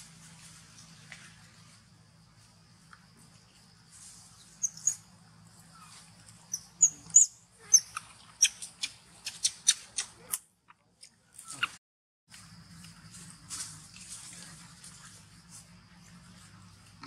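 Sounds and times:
macaque squeaks: 0:06.5 - 0:10.1.

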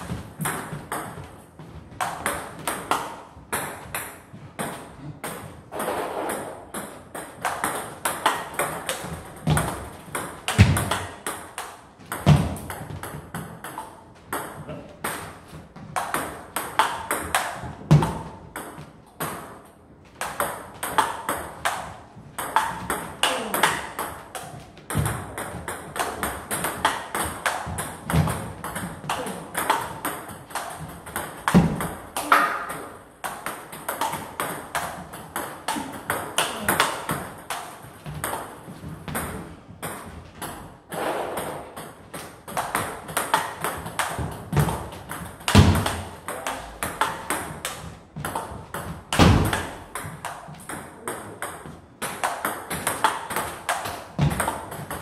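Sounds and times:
ping pong ball clicking off bats: 0:00.0 - 0:40.7, 0:41.4 - 0:55.0
ball bouncing on table: 0:01.9 - 0:19.5, 0:20.2 - 0:55.0.

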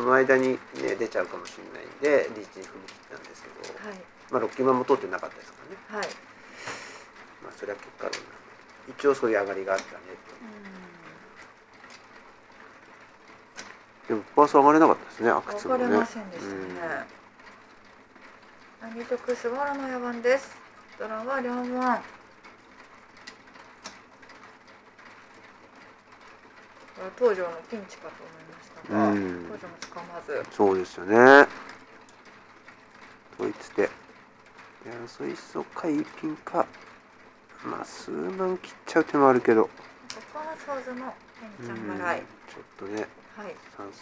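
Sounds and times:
man speaking: 0:00.0 - 0:05.8, 0:14.1 - 0:16.8, 0:28.8 - 0:29.5, 0:30.4 - 0:31.6, 0:37.6 - 0:39.7, 0:41.6 - 0:43.2.

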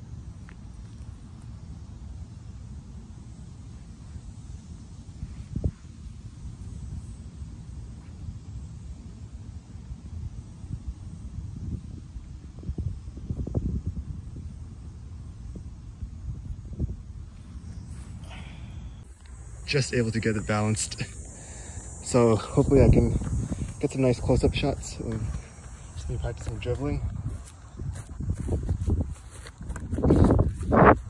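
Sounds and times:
low rumbling on microphone: 0:21.2 - 0:31.0.

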